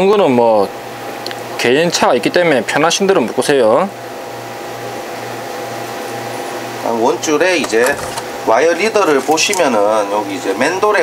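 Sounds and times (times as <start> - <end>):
electric motor and fan humming: 0.0 - 11.0.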